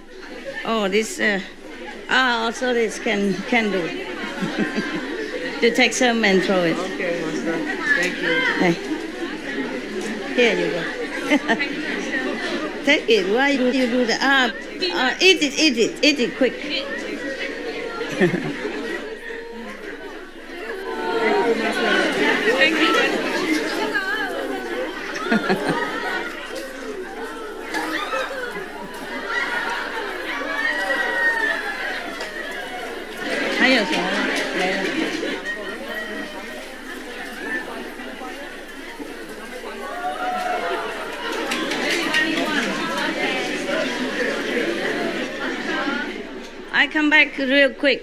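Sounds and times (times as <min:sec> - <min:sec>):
chatter of many voices: 0:00.0 - 0:48.0.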